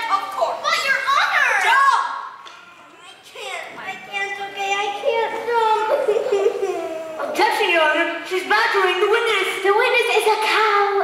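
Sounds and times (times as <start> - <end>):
child giving wordless cries: 4.0 - 7.8.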